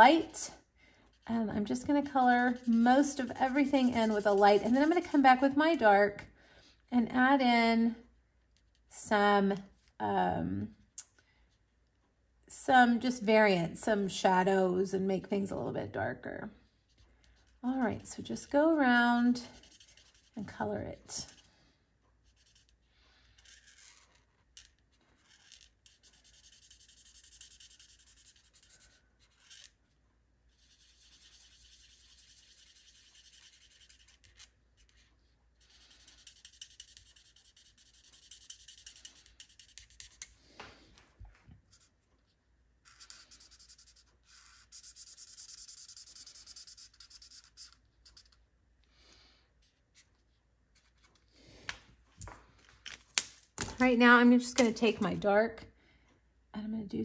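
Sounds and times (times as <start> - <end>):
marker nib rubbing on cardstock: 1.1 - 5.2, 19.6 - 20.4, 22.2 - 24.3, 25.2 - 29.7, 30.5 - 40.3, 42.8 - 48.4.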